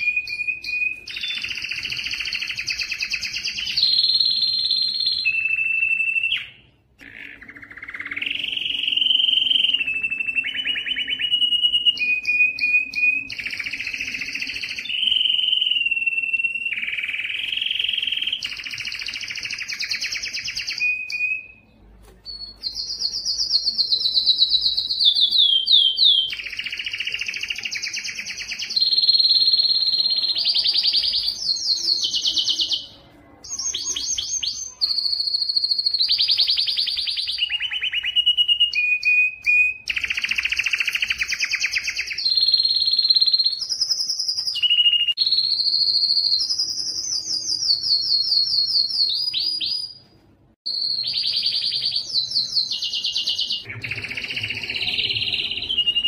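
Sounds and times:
canary singing trills: 0:00.0 - 0:50.0, 0:50.7 - 0:56.0.

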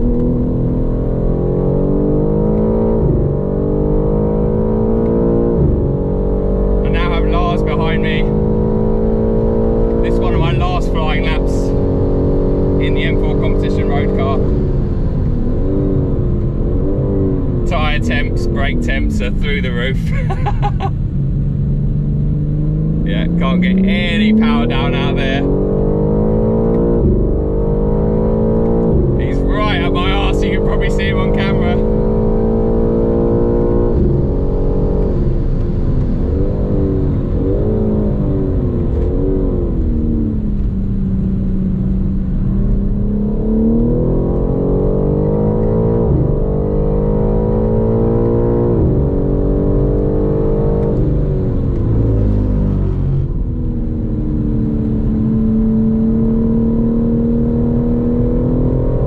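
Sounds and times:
car engine revving through gears: 0:00.0 - 0:59.0.

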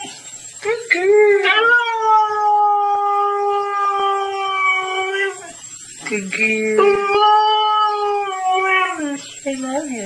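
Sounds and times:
dog howling: 0:00.9 - 0:05.7, 0:06.5 - 0:09.4.

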